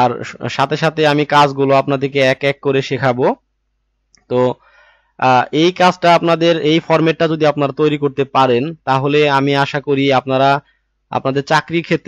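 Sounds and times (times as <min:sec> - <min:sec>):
man narrating: 0:00.0 - 0:03.4, 0:04.3 - 0:04.6, 0:05.2 - 0:12.0.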